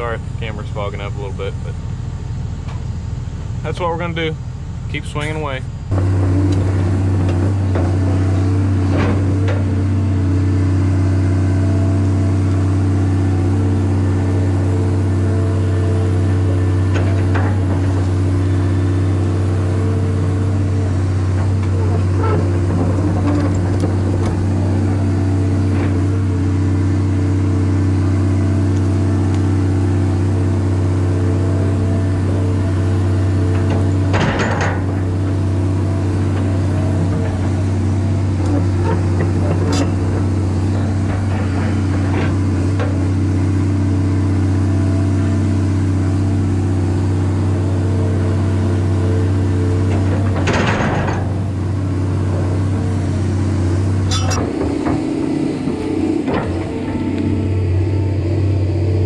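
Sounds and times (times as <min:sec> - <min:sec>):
excavator diesel engine running: 0:00.0 - 0:59.0.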